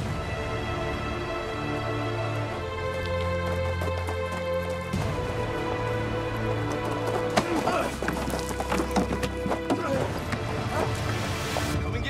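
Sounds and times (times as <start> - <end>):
background music: 0.0 - 12.0
footsteps running on rock: 1.8 - 11.4.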